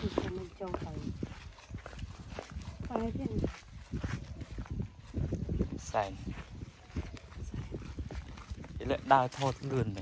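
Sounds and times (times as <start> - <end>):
footsteps on sandy ground: 0.0 - 10.0.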